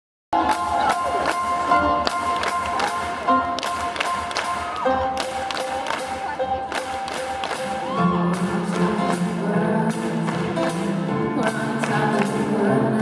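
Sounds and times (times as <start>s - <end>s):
live band music: 0.4s - 13.0s.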